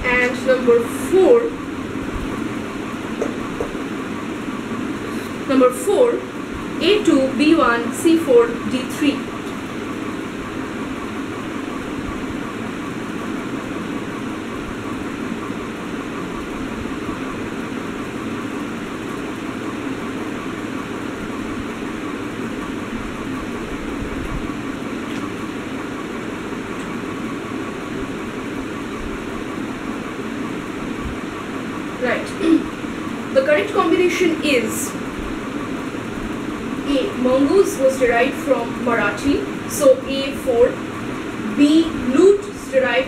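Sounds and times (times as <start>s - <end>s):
room hum and hiss: 0.0s - 43.0s.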